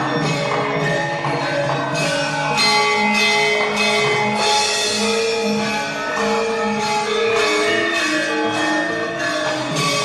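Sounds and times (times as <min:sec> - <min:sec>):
drum and percussion beat: 0:00.0 - 0:10.0
ringing metallophone tones: 0:00.0 - 0:10.0.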